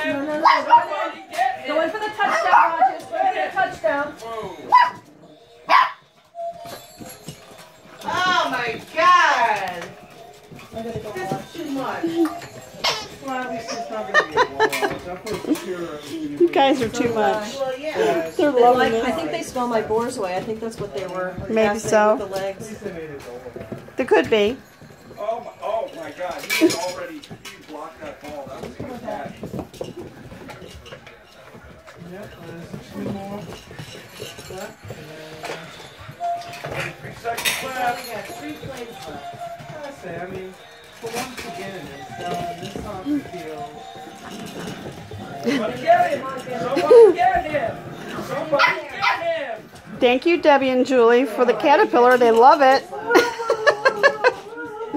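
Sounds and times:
quiet talking: 0.0s - 54.9s
puppies yapping: 0.4s - 1.4s, 4.6s - 7.6s, 37.8s - 40.2s, 48.4s - 49.4s
tin cans and toys clinking: 6.0s - 54.9s
laughter: 13.9s - 15.6s, 53.0s - 54.6s.

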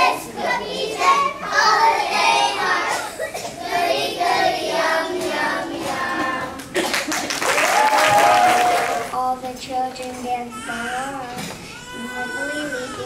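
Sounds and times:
young children singing: 0.0s - 6.9s, 8.1s - 13.0s.

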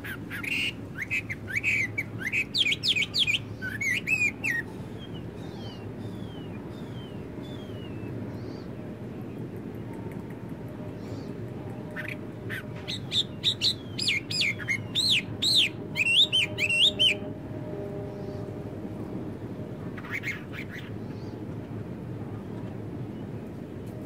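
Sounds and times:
songbird singing: 0.0s - 21.6s.

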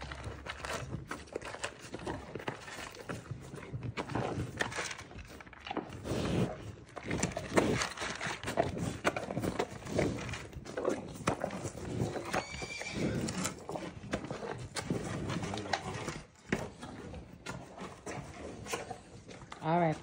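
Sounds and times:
steer crunching and chewing: 0.0s - 20.0s.

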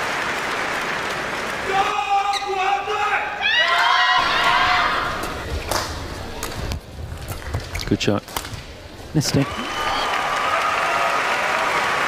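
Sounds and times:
hum of indoor hall: 0.0s - 12.0s.

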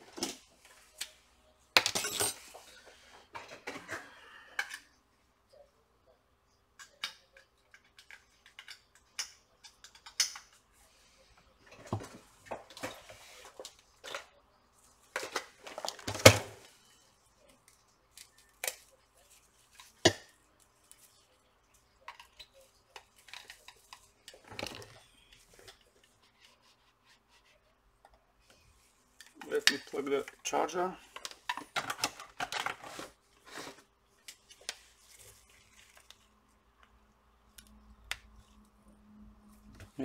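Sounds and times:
small objects clicking and tapping: 6.8s - 10.6s.

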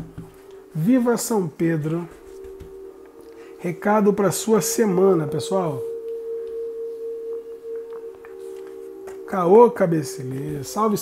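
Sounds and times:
ambient music drone: 0.0s - 11.0s.

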